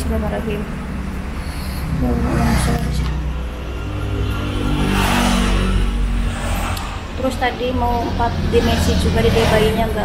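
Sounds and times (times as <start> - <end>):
vehicle engine revving past: 1.3 - 10.0.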